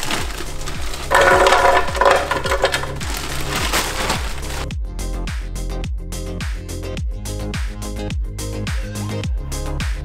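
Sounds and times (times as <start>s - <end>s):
frozen berries clattering into blender: 0.0s - 4.7s.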